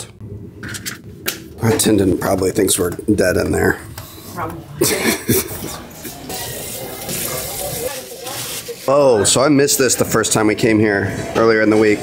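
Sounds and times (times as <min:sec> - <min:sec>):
water running from a faucet: 0:06.1 - 0:09.0.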